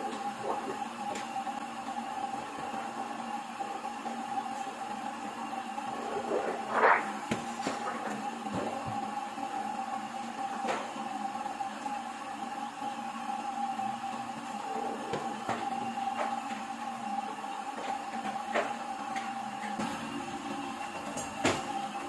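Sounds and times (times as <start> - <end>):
printing press running: 0.0 - 11.2.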